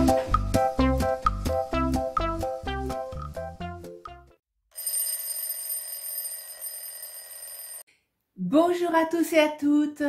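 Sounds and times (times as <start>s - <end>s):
electric bell ringing: 4.8s - 7.8s.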